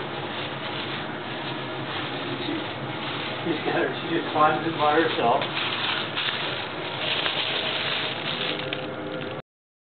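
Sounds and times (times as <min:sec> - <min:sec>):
plastic bag rustling: 0:00.0 - 0:09.4.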